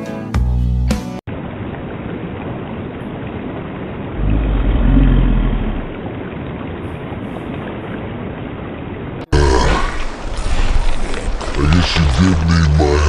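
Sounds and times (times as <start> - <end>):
rushing noise with deep rumble: 1.3 - 8.1.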